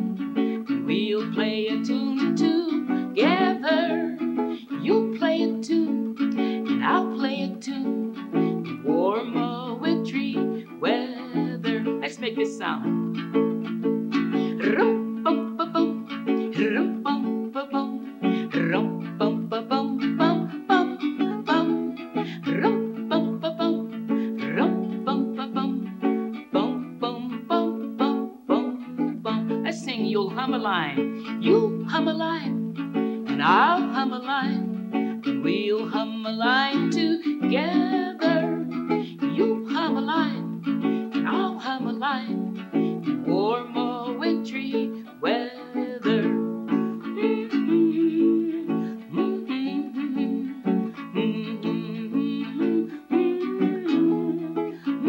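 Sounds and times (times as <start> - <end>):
ukulele strumming chords: 0.0 - 55.0.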